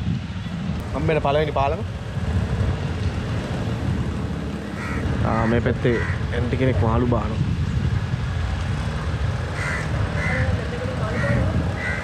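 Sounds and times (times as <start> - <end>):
boat engine rumble: 0.0 - 12.0
crows cawing: 4.7 - 6.3, 9.5 - 12.0.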